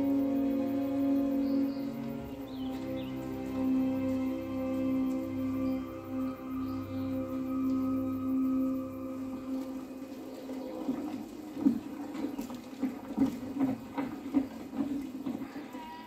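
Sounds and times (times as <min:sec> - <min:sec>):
ambient music drone: 0:00.0 - 0:11.9.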